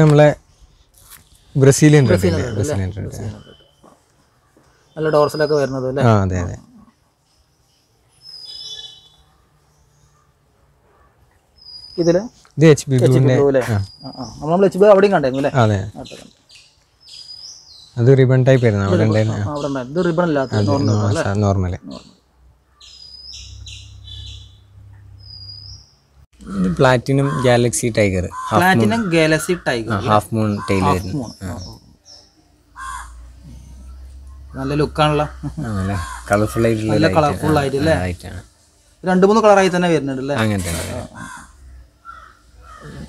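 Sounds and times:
small birds chirping: 0.0s - 43.0s.

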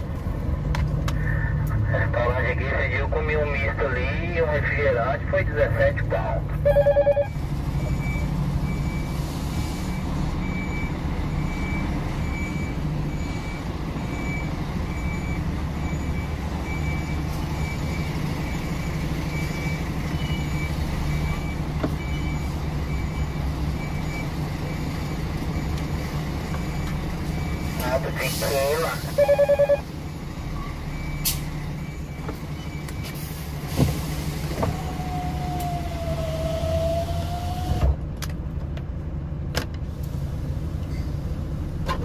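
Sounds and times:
diesel truck engine running: 0.0s - 42.0s
reversing alarm beeping: 6.6s - 9.2s, 9.8s - 33.4s.

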